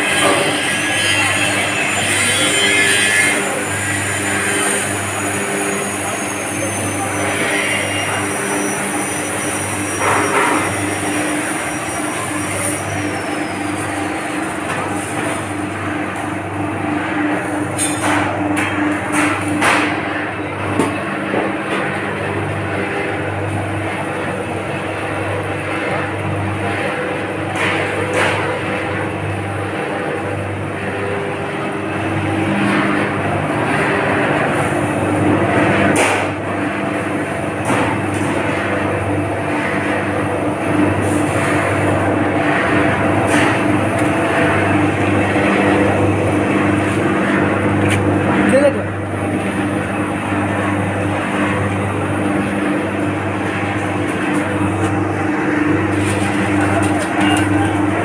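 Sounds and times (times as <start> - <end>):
roaster machine humming: 0.0 - 58.0.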